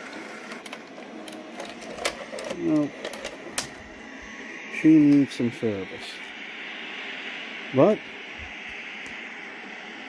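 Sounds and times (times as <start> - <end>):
television static hiss: 0.0 - 10.0.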